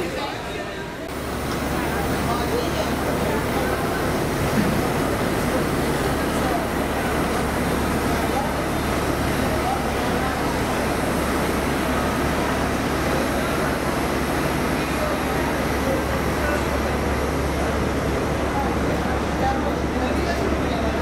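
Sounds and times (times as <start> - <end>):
indistinct chatter of passengers: 0.0 - 21.0.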